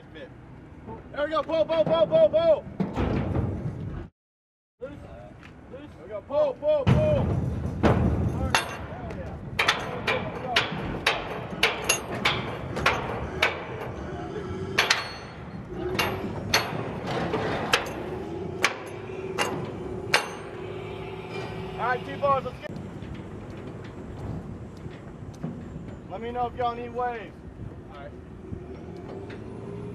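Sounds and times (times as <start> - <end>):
ringing metallic clanks: 7.7 - 9.0, 9.6 - 14.0, 14.8 - 24.3.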